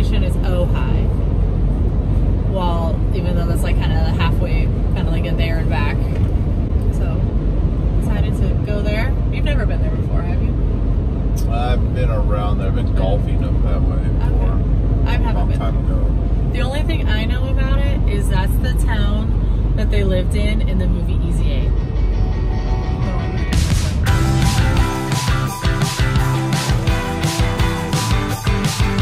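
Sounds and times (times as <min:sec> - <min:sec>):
people talking: 0:00.0 - 0:01.1, 0:02.5 - 0:06.2, 0:06.9 - 0:07.3, 0:08.0 - 0:10.6, 0:11.4 - 0:21.8
car cabin road rumble: 0:00.0 - 0:29.0.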